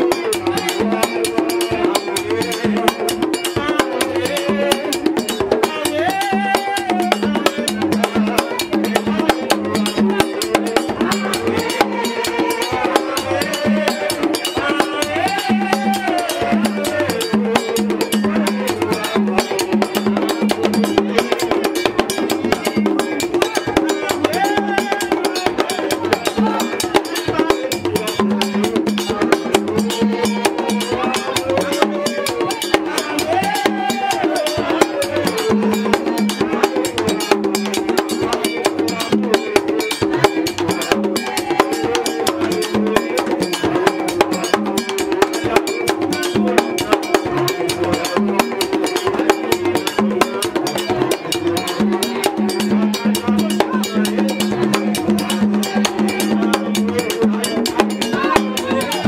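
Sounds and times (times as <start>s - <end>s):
man singing into microphone: 0.0s - 20.3s, 22.4s - 59.0s
drums: 0.0s - 59.0s
fast clicking percussion: 0.0s - 59.0s.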